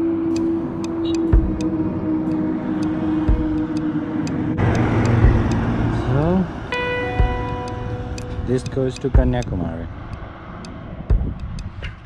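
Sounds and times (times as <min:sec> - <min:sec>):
heavy truck passing: 0:00.0 - 0:12.0
road and wind noise: 0:00.0 - 0:12.0
motorcycle engine running: 0:00.4 - 0:01.8, 0:03.2 - 0:03.8, 0:04.6 - 0:09.5.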